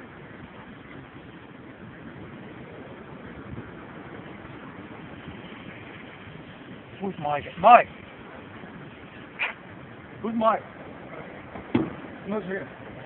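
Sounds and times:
sea: 0.0s - 13.0s
wind: 0.0s - 13.0s.

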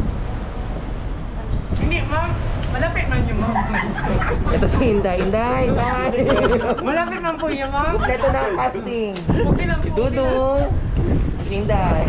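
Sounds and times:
man talking: 6.3s - 8.2s.

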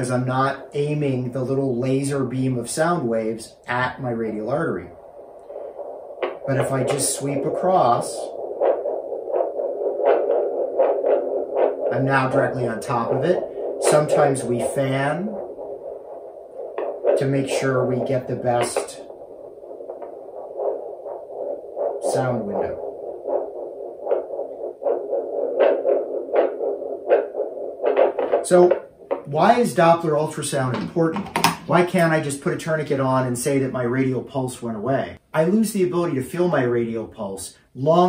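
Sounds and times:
rhythmic whooshing doppler pulse: 0.0s - 34.3s
steady hum: 0.0s - 38.0s.

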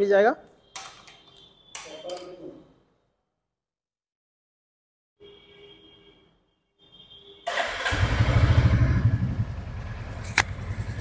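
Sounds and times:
motorcycle engine starting and idling: 7.5s - 11.0s.

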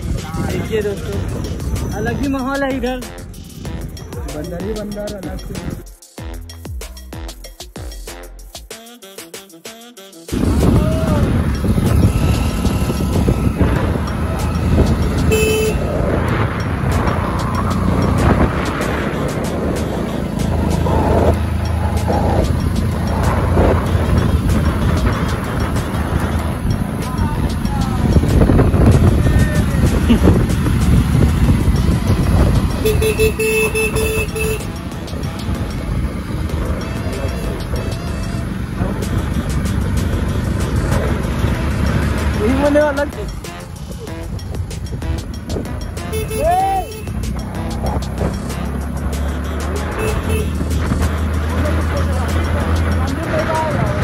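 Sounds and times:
wind rush on microphone: 0.0s - 2.8s, 10.3s - 46.3s, 49.8s - 54.0s
motorcycle engine and road noise: 0.0s - 5.8s, 10.3s - 54.0s
vehicle horn honking: 11.8s - 16.1s, 32.7s - 35.0s, 45.0s - 50.8s.

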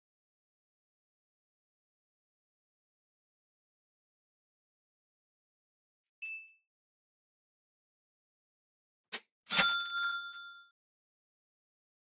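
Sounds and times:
bell-like chime ding: 6.2s - 6.7s, 9.5s - 10.8s.

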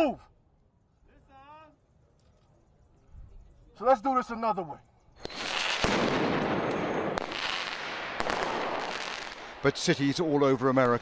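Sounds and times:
explosive bangs: 5.2s - 10.2s.

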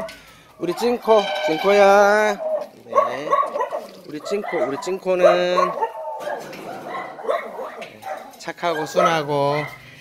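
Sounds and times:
dogs barking and whining: 0.0s - 10.0s.

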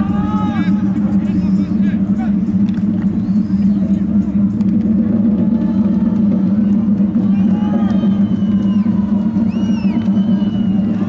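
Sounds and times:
distant shouting voices: 0.0s - 2.4s, 5.2s - 11.0s
steady low rumble: 0.0s - 11.0s.

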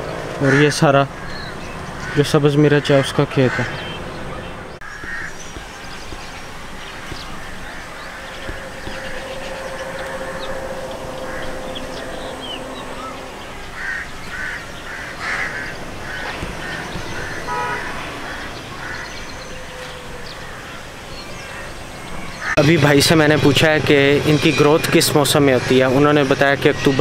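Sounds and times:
birds calling: 0.0s - 27.0s.

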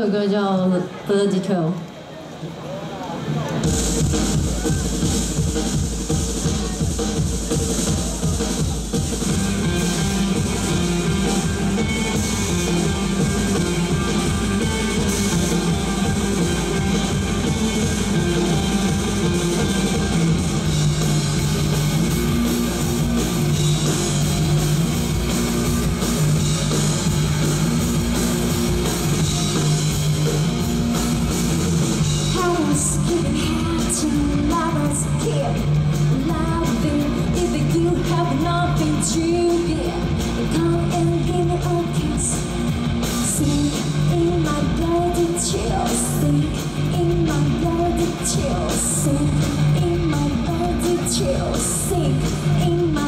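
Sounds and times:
live rock band playing: 3.2s - 53.0s.

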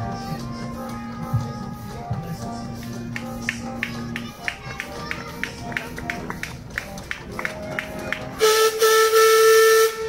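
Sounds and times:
steam whistle blowing: 8.4s - 10.0s.

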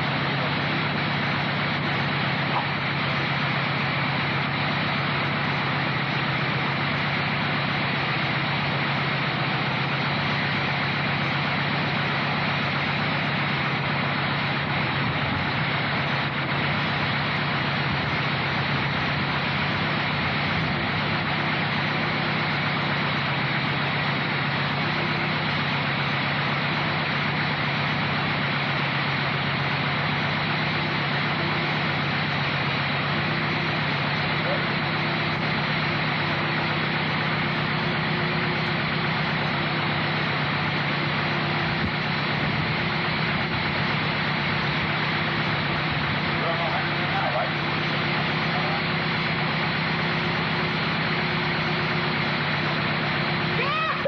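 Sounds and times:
dune buggy engine idling: 0.0s - 54.0s.

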